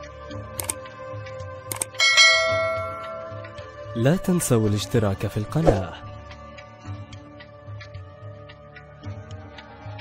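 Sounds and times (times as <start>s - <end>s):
bell-like notification ding: 2.0s - 3.6s.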